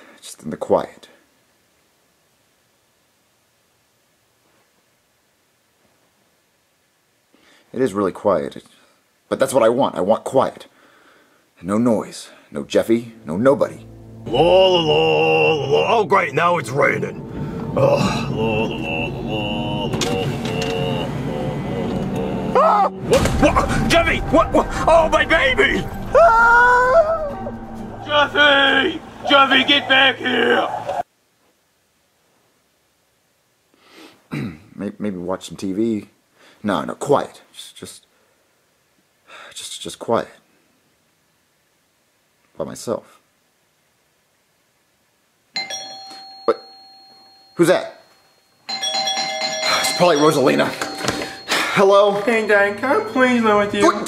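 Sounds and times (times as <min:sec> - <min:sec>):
background music: 0:12.6 - 0:31.0
rising and falling cry: 0:14.0 - 0:23.9, 0:25.9 - 0:31.0
people shouting: 0:14.3 - 0:16.3, 0:17.8 - 0:31.0
doorbell chime ringing: 0:45.6 - 0:54.0.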